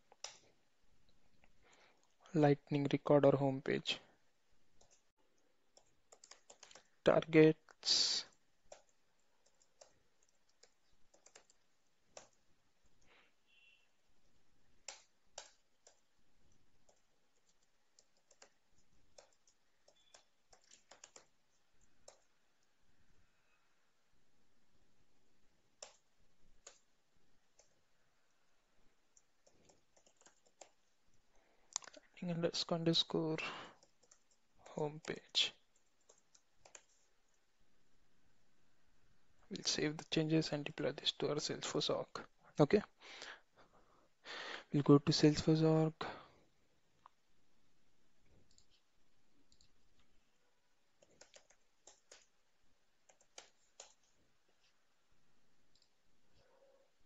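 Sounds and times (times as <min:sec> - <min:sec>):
computer keys clicking: 0:00.1 - 0:00.5, 0:04.8 - 0:05.1, 0:05.7 - 0:07.0, 0:08.3 - 0:13.1, 0:14.7 - 0:22.8, 0:25.8 - 0:27.8, 0:29.0 - 0:31.0, 0:33.7 - 0:37.4, 0:49.5 - 0:50.0, 0:50.9 - 0:52.4, 0:53.0 - 0:54.2.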